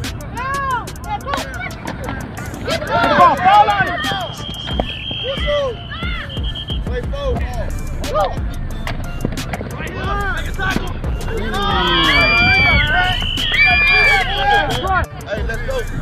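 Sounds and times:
background music with steady beat: 0.0 - 16.0
voices: 0.0 - 16.0
whistle blast: 3.5 - 7.1, 11.5 - 15.0.

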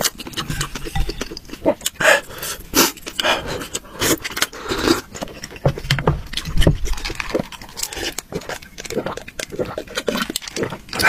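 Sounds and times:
airy slurps: 0.0 - 11.0.

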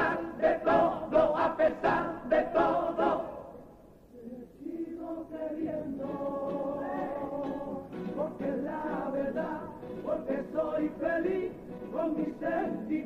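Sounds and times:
male chorus singing: 0.0 - 3.6, 4.3 - 13.0.

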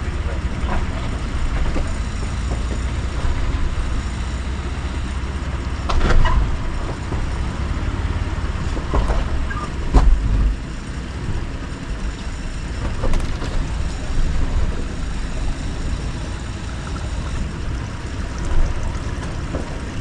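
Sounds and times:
engine rumbling at crawling speed: 0.0 - 20.0.

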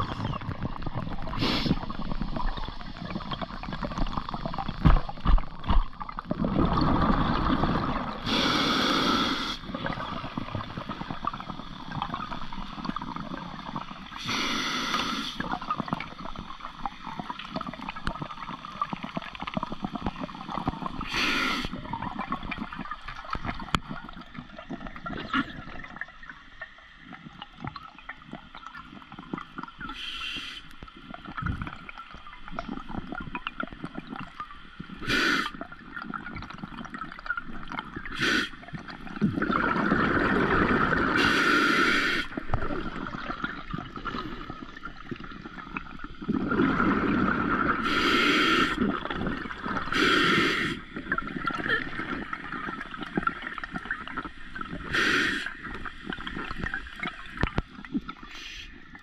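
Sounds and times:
exhaled bubbles gurgling: 0.0 - 59.0
underwater hiss: 1.3 - 2.3, 8.1 - 10.0, 14.1 - 15.6, 20.8 - 22.0, 29.9 - 30.8, 35.0 - 35.6, 38.0 - 38.6, 40.9 - 42.6, 46.6 - 48.9, 49.7 - 51.1, 54.7 - 55.9, 58.2 - 58.9.

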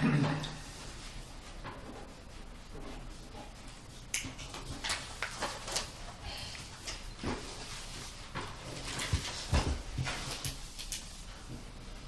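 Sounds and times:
papers rustling: 4.4 - 6.2.

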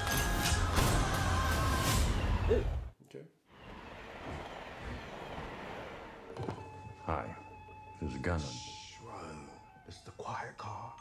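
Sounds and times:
loud trailer music: 0.0 - 2.5.

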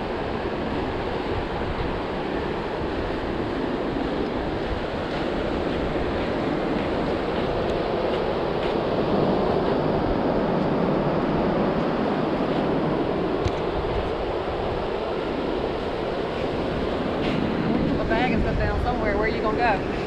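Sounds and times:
ocean surf breaking: 0.0 - 20.0
wind buffeting microphone: 0.0 - 20.0.

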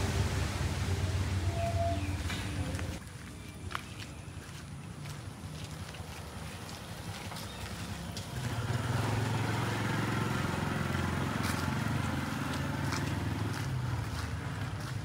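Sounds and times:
engine running: 0.0 - 3.0, 5.2 - 15.0
faint footsteps: 2.2 - 8.4, 11.3 - 15.0.

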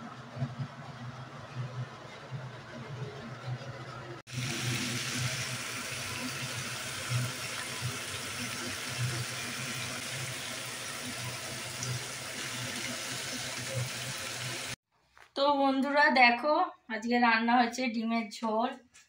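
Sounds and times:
potatoes frying in oil: 4.3 - 14.8.

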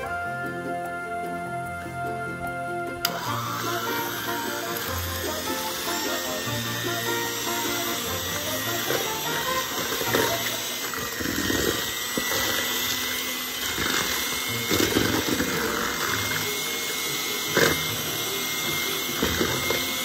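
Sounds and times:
electric hand mixer running: 3.0 - 20.0.

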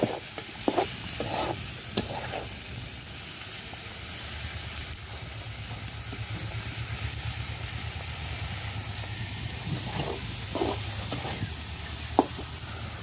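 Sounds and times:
spatula scraping a wok: 0.0 - 2.7, 9.5 - 12.6
food sizzling in a wok: 0.0 - 13.0.

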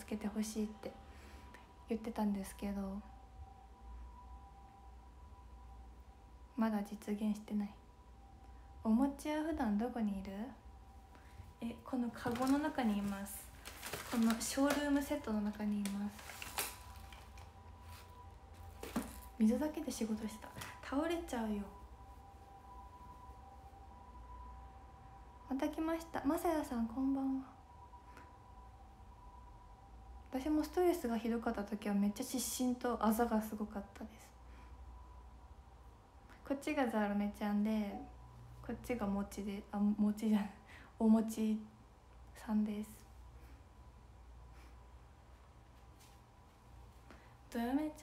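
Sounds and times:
faint steady high tones: 0.0 - 48.0
low hum: 0.0 - 48.0.

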